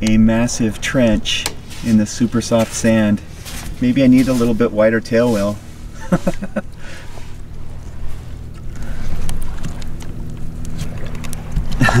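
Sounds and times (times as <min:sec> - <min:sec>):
person speaking: 0:00.0 - 0:05.7
low engine drone: 0:00.0 - 0:12.0.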